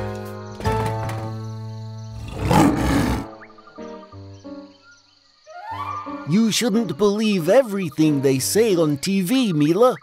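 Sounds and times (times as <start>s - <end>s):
background music: 0.0s - 10.0s
cartoon lion roaring: 2.2s - 3.3s.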